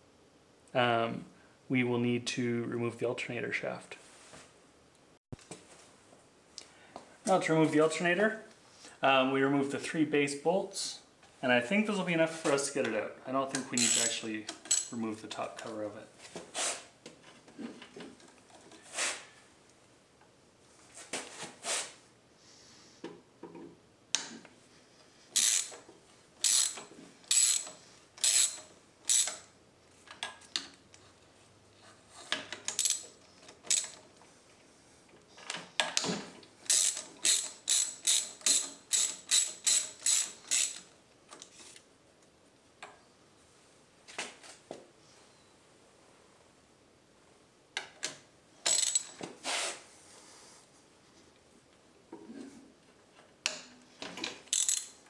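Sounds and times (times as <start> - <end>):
socket ratchet clicking: 25.4 - 25.8, 26.4 - 29.5, 32.6 - 34.0, 36.7 - 40.9, 48.6 - 49.2, 54.5 - 55.0.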